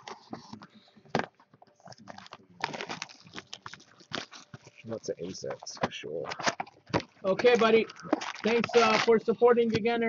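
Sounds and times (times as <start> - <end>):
plastic wrap tearing and crinkling: 2.0 - 5.6, 6.3 - 9.3.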